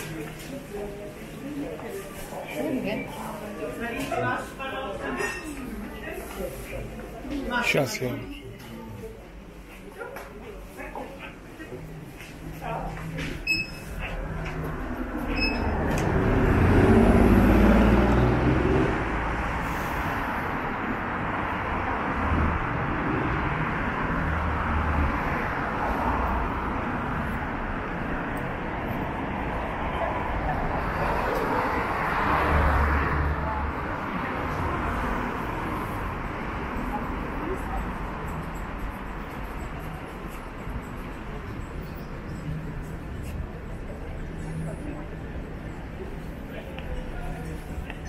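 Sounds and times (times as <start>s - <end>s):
chatter of passers-by: 0.0s - 48.0s
traffic noise: 0.0s - 48.0s
vehicle passing: 13.8s - 41.6s.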